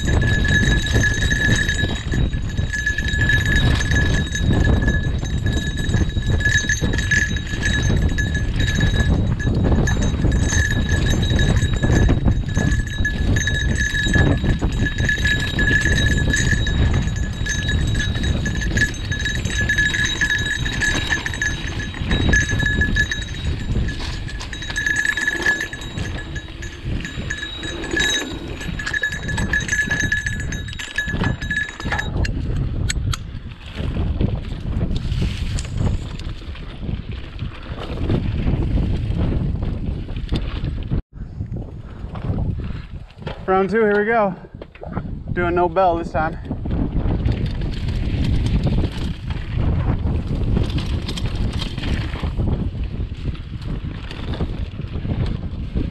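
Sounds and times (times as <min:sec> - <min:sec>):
bicycle bell ringing: 0:00.0 - 0:33.3
bike rumble and rattle: 0:00.0 - 0:55.9.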